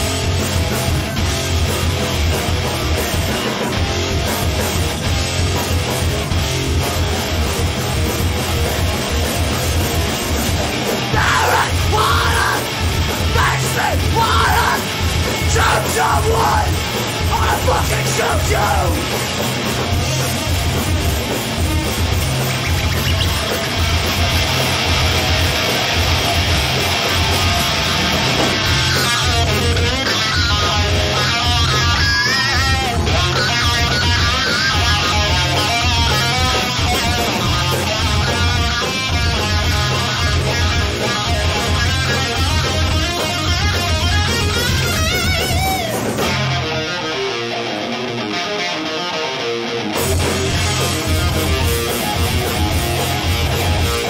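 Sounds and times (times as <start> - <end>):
bass guitar: 0.0 - 54.0
drums: 0.0 - 54.0
electric guitar: 0.0 - 54.0
wavering lead guitar: 0.0 - 54.0.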